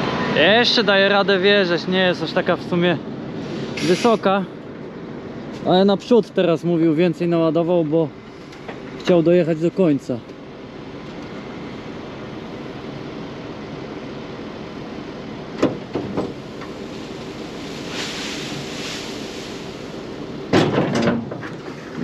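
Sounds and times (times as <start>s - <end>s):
tractor engine and machinery drone: 0.0s - 22.0s
grass pouring out hiss: 3.4s - 4.3s, 16.4s - 20.4s.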